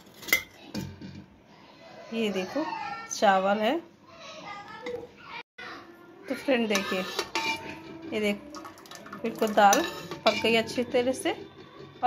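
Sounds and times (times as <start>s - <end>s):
ladle scraping metal pot: 6.3s - 11.3s.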